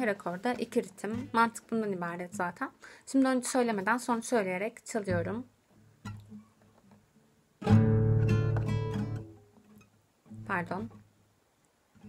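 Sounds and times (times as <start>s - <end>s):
acoustic guitar strumming: 1.1s - 1.6s, 7.6s - 11.1s.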